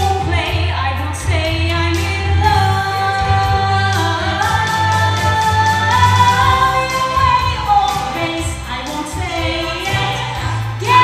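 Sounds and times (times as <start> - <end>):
woman singing into microphone: 0.0 - 11.0
women singing harmony: 0.0 - 11.0.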